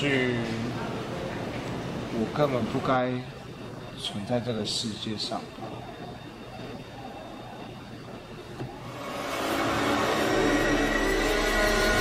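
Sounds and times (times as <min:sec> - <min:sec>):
deep drone: 0:06.4 - 0:12.0
ominous music: 0:08.8 - 0:12.0.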